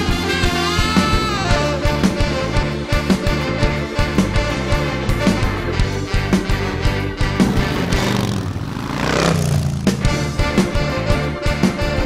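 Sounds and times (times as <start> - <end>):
vehicle engine: 6.9 - 10.6.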